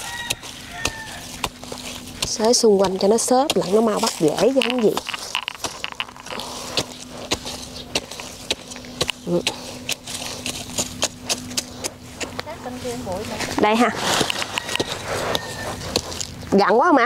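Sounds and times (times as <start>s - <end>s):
hand trowel scraping dry soil: 0.0s - 17.0s
steady low hum: 0.0s - 17.0s.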